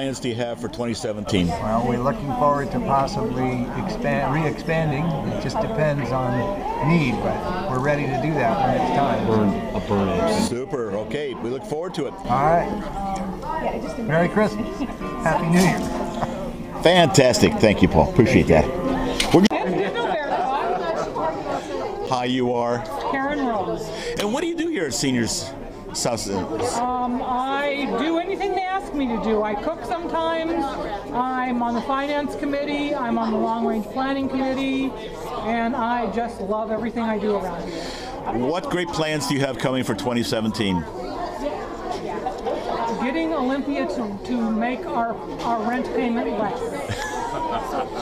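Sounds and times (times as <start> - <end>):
people chattering in a large room: 0.0 - 48.0
voices talking: 1.1 - 48.0.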